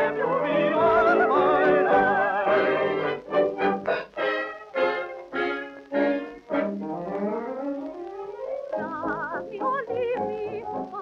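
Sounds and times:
old dance band record: 0.0 - 11.0.

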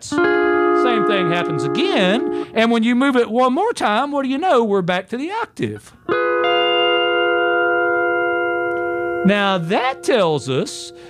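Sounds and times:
pedal steel guitar chord: 0.0 - 2.6, 6.1 - 11.0.

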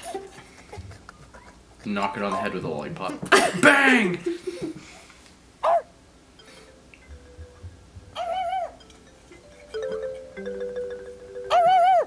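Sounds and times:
dog-like yelp: 5.6 - 5.9
mallet percussion music: 6.4 - 12.0.

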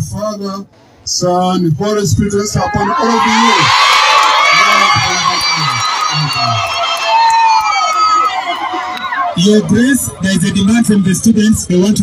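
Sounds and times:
crowd of students cheering: 2.4 - 12.0.

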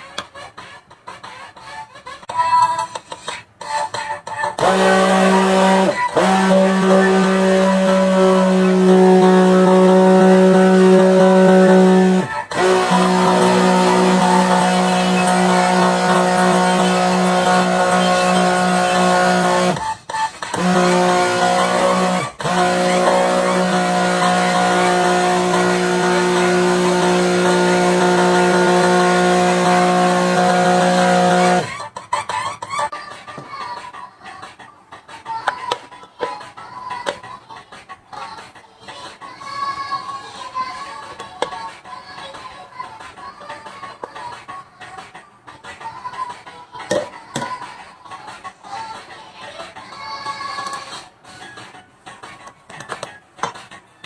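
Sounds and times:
stick blender motor hum: 4.6 - 19.8, 20.5 - 31.7.

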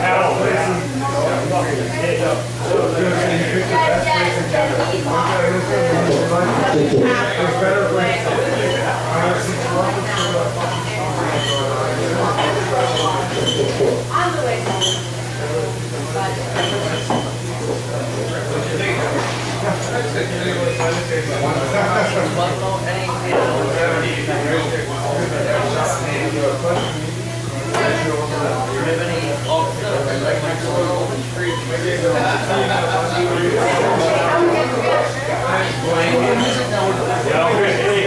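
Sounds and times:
crowd chatter: 0.0 - 38.0.

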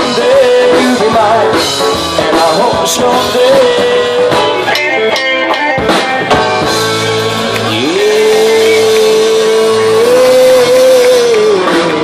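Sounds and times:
rock band holding long note: 0.0 - 12.0.

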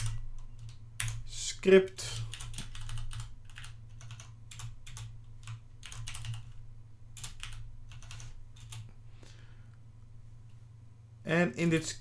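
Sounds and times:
computer keyboard typing: 0.0 - 1.4, 2.1 - 6.6, 7.2 - 8.9
steady low hum: 0.0 - 12.0.

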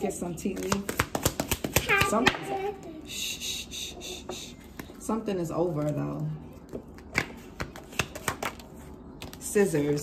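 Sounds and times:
cards being shuffled: 5.7 - 9.5.

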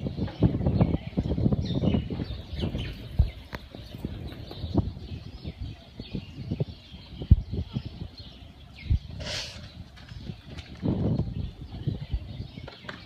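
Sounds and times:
birds chirping: 0.0 - 13.0.

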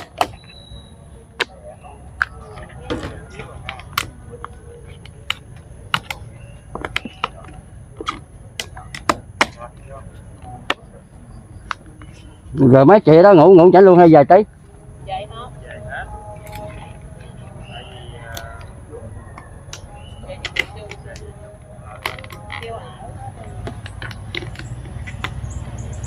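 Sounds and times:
objects clicking on a table: 23.5 - 25.4.

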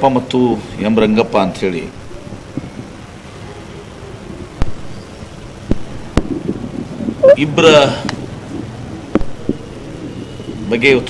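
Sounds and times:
busy room background noise: 0.0 - 11.0.

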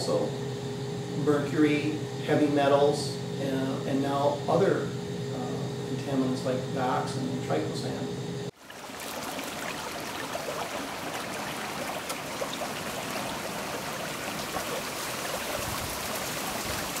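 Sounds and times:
stream water rushing: 8.6 - 17.0.

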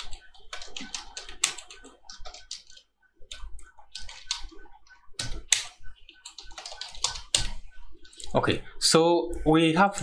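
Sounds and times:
keyboard typing clicks: 0.0 - 8.3.

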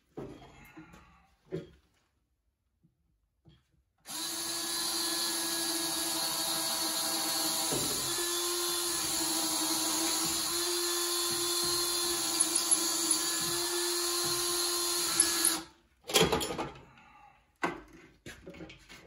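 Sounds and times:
electric drill boring into wood: 4.1 - 15.7.

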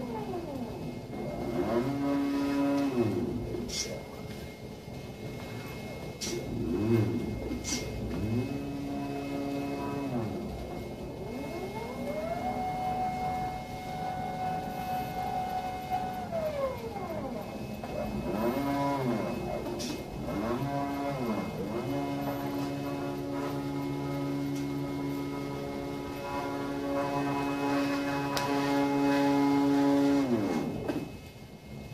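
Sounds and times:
stepper motors whining: 0.0 - 31.9.

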